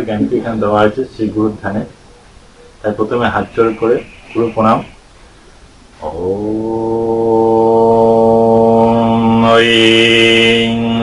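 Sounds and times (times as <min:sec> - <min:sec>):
man chanting: 0:02.8 - 0:05.0, 0:06.0 - 0:11.0.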